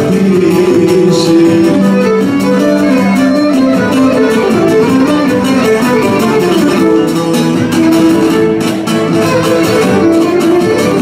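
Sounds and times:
folk band playing: 0.0s - 11.0s
strummed plucked strings: 0.0s - 11.0s
violin melody: 0.7s - 11.0s.

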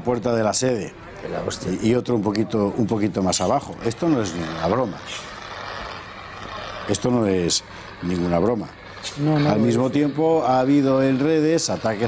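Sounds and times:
fire extinguishers spraying: 0.0s - 12.0s.

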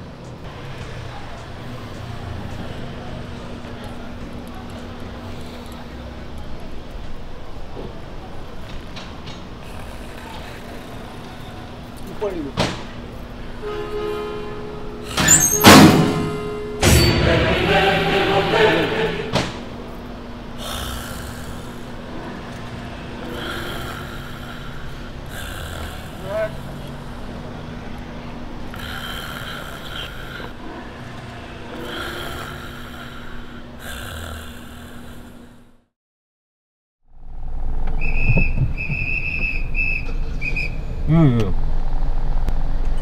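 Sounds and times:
motor vehicle on the road: 0.0s - 35.9s, 37.0s - 43.0s.

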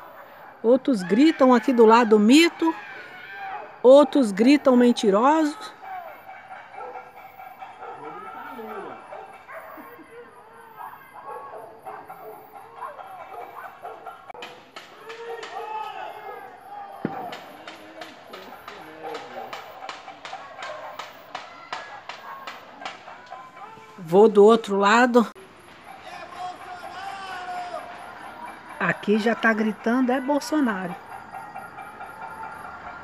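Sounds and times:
distant shouting voices: 0.0s - 33.0s.

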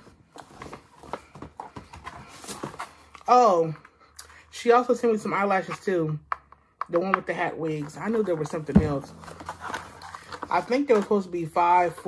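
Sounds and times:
packaging rustling: 9.1s - 11.3s.

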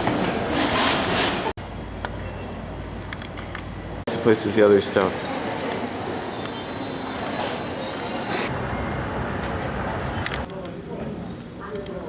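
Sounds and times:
airport terminal din: 2.1s - 12.0s.

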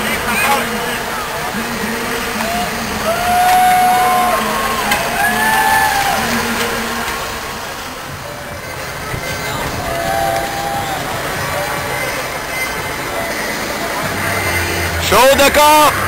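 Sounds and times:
truck engine running: 0.0s - 16.0s
spectators shouting and whooping: 2.3s - 7.4s, 9.2s - 13.4s.

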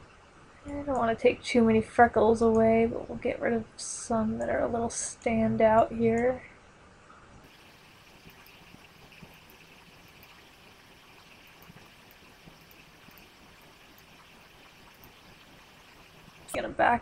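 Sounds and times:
low steady hiss: 0.0s - 17.0s.

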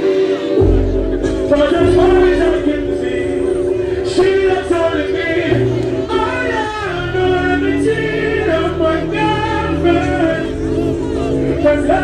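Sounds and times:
sung vocals holding long notes: 0.0s - 12.0s
steady bass line: 0.6s - 12.0s.

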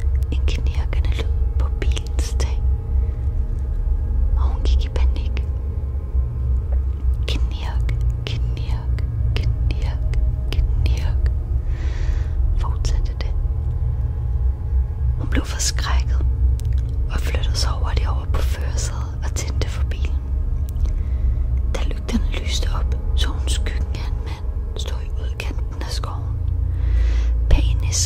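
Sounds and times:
low drone: 0.0s - 28.0s
breathy whisper-like noises: 6.8s - 13.4s, 17.1s - 28.0s.

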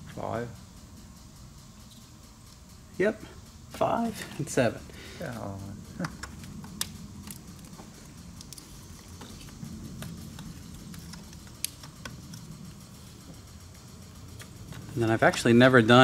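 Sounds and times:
low steady hum: 0.0s - 16.0s
wiring rustling: 6.0s - 16.0s.

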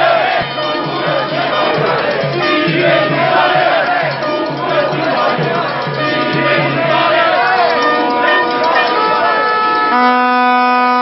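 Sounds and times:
crowd shouting: 0.0s - 10.1s
plastic stadium horn blowing: 8.0s - 11.0s.

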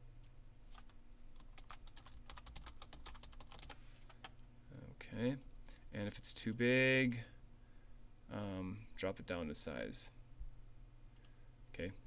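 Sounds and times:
typing on computer keyboard: 0.8s - 4.3s.

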